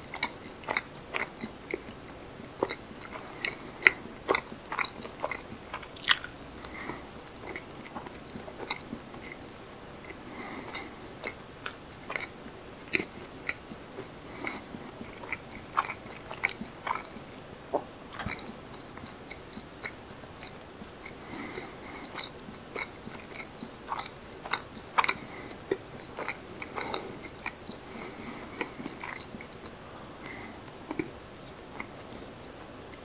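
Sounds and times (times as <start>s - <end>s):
wet chewing mouth clicks: 4.2s - 9.4s, 10.7s - 13.6s.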